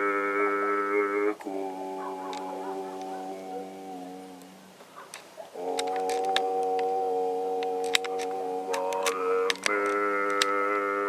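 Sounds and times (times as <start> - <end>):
low drone: 0.0 - 4.8, 5.5 - 11.0.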